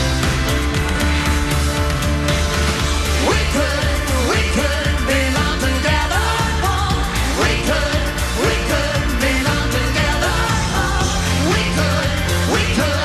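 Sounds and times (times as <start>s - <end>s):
pop song with singing: 0.0s - 13.0s.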